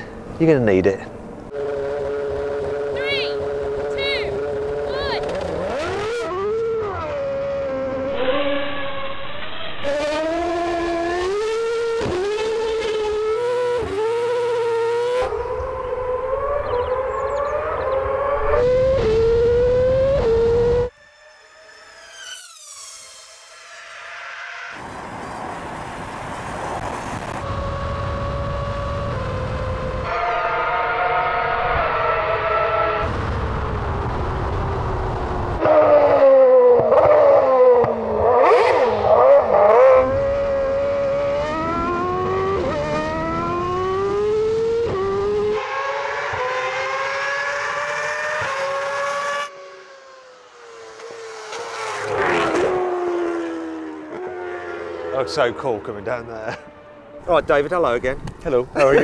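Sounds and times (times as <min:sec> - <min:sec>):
racing car engine accelerating: 0:01.5 - 0:25.4, 0:26.5 - 0:57.3
high falling whine: 0:07.6 - 0:11.1, 0:20.8 - 0:24.8
racing car passing by: 0:35.5 - 0:58.0.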